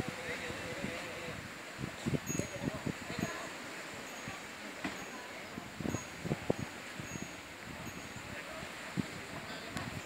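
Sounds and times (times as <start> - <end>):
wind buffeting microphone: 0.0 - 3.6, 5.1 - 10.0
wind in tree leaves: 0.0 - 10.0.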